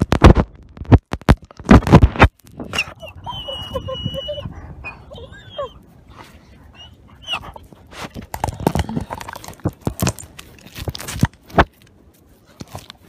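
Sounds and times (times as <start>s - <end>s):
handling rumble: 2.3s - 13.0s
wolf whining: 2.6s - 9.5s
close breathing: 4.4s - 9.7s.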